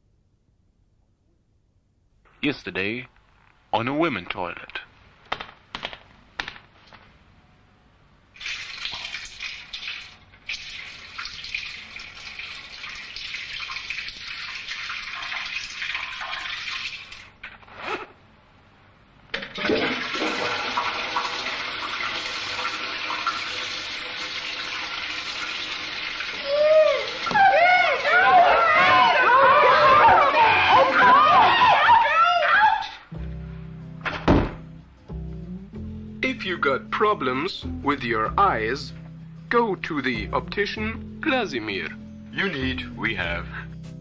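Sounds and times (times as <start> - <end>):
water running in toilet: 8.4 - 17.4, 19.4 - 29.2.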